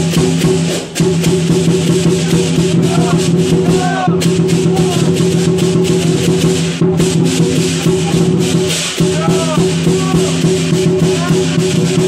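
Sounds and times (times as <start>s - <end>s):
rapid percussion hits: 0.0s - 12.0s.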